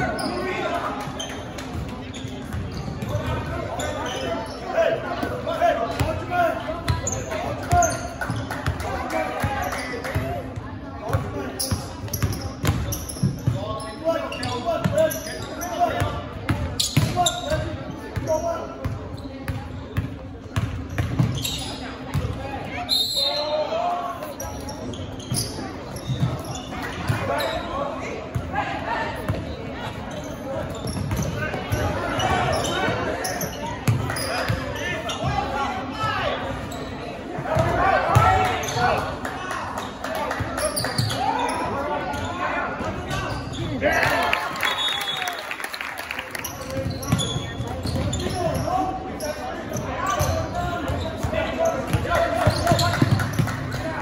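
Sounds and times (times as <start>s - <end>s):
players and spectators voices: 0.0s - 54.0s.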